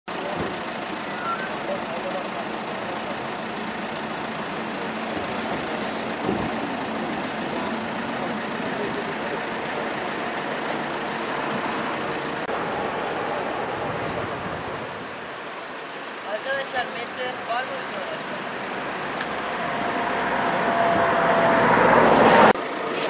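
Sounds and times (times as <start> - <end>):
vehicle engine idling: 0.1 - 23.0.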